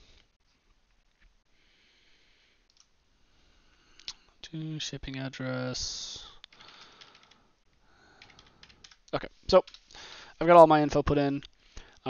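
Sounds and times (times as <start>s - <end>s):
computer mouse clicks: 2.7s - 2.9s.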